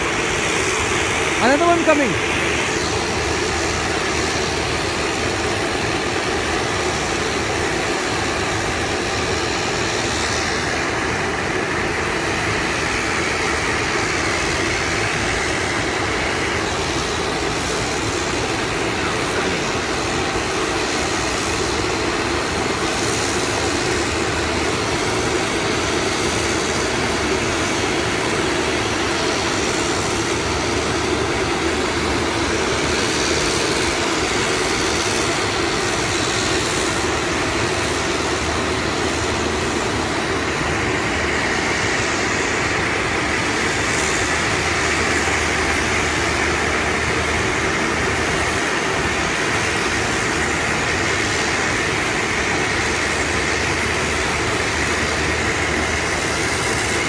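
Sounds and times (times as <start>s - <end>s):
aircraft engine and air noise: 0.0s - 57.0s.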